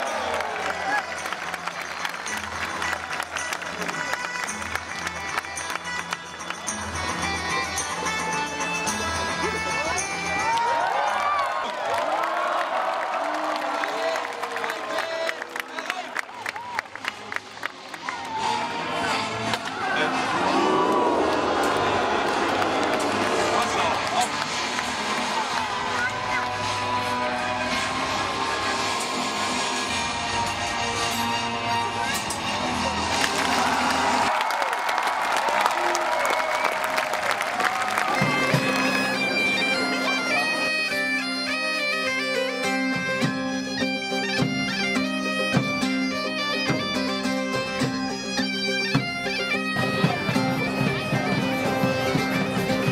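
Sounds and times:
bagpipe music: 0.0 - 11.2, 23.1 - 34.3, 37.5 - 52.9
crowd cheering and talking: 0.0 - 52.9.

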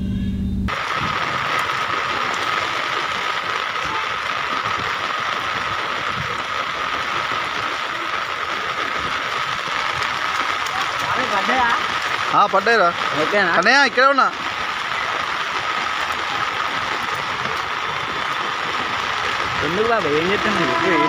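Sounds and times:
rain and floodwater rushing: 0.7 - 21.0.

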